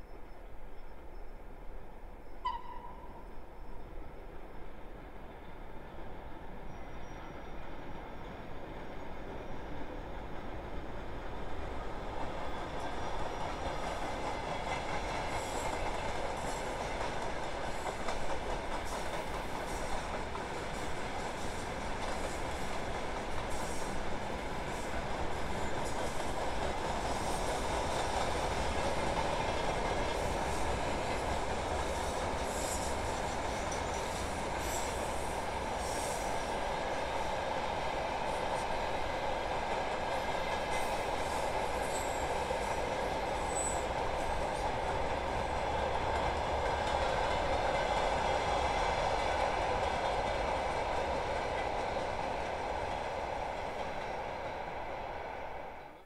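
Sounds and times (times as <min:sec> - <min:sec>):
train wheels on rails: 0:03.9 - 0:56.0.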